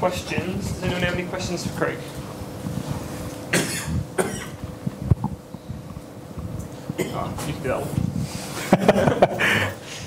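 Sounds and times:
person coughing: 3.5 - 4.6, 7.0 - 7.3.

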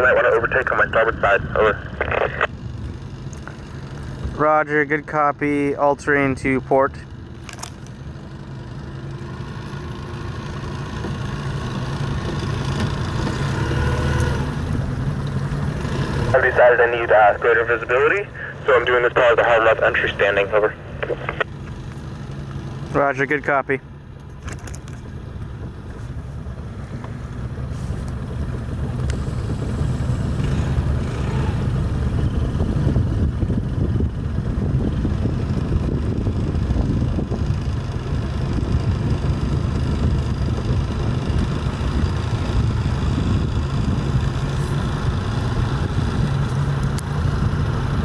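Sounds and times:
boat engine running: 0.0 - 48.0.

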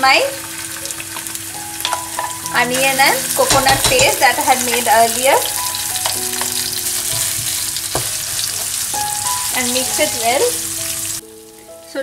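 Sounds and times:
paste sizzling in hot oil: 0.0 - 11.6
spatula knocking against pan: 3.4 - 5.0, 6.0 - 8.8.

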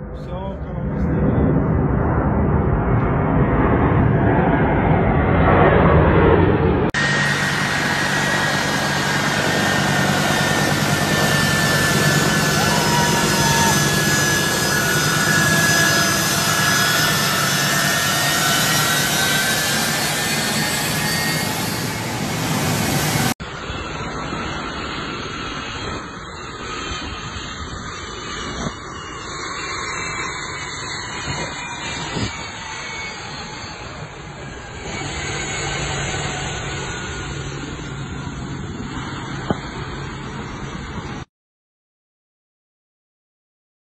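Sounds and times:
jet engine roar with whine: 0.0 - 41.3.

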